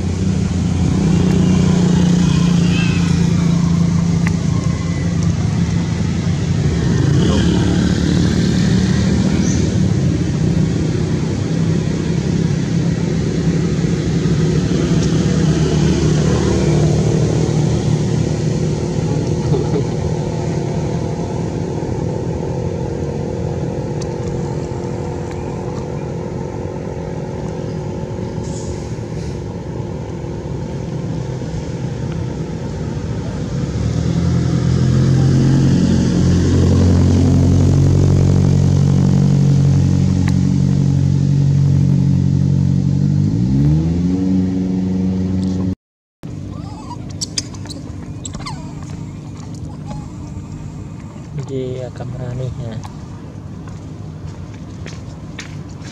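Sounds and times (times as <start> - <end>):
vehicle engine running: 0.0 - 43.8, 44.5 - 55.9.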